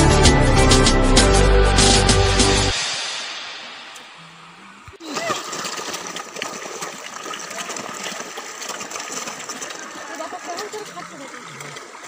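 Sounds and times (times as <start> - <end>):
background music: 0.0 - 4.8
fish splashing at water surface: 2.8 - 12.0.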